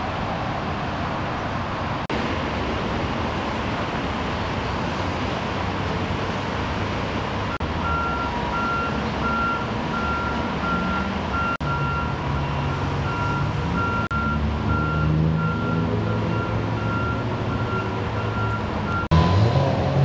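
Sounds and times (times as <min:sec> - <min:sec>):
freeway traffic noise: 0:00.0 - 0:20.0
reversing alarm beeping: 0:07.8 - 0:19.5.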